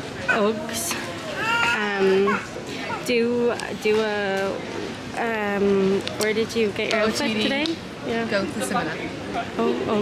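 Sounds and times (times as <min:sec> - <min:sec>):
woman speaking: 0:01.7 - 0:02.4.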